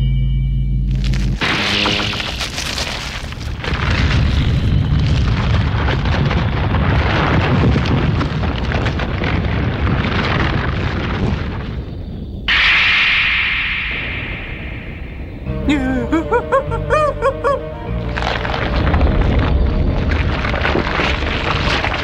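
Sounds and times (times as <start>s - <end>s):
music: 0.0s - 1.4s, 15.4s - 22.0s.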